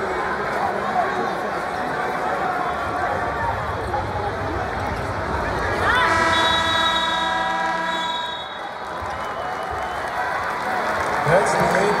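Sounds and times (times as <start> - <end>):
large crowd noise: 0.0 - 12.0
arena horn blast: 5.8 - 8.6.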